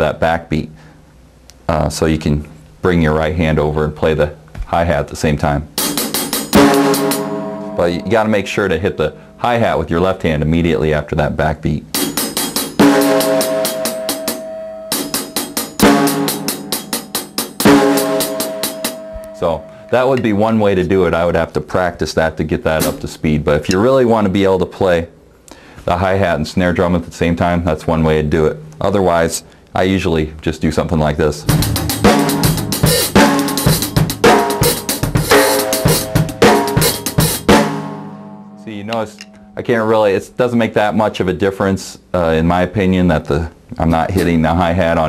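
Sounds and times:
fast hi-hat strokes: 0:05.8 - 0:07.3, 0:12.0 - 0:14.4, 0:31.5 - 0:37.5
loud snare backbeat: 0:05.8 - 0:07.6, 0:12.0 - 0:19.3, 0:22.8 - 0:23.2, 0:31.5 - 0:38.2
bass drum: 0:22.8 - 0:23.0, 0:31.5 - 0:38.2.

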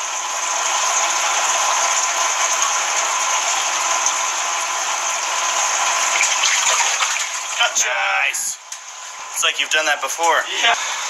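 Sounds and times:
air bubbles rising: 0:06.0 - 0:07.6
hands churning aquarium water: 0:06.0 - 0:07.6.

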